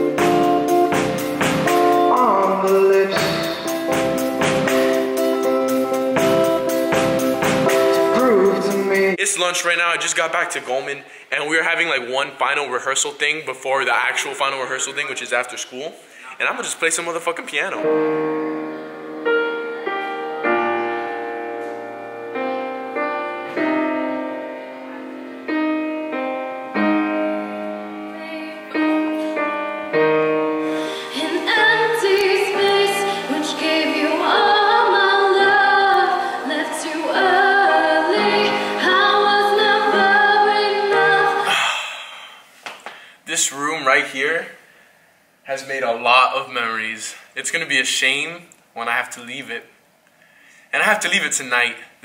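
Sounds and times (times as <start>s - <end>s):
grand piano playing: 0.0s - 9.2s, 17.8s - 41.6s
woman singing with vibrato: 2.0s - 3.9s, 8.0s - 9.2s, 27.3s - 29.3s, 30.8s - 42.0s.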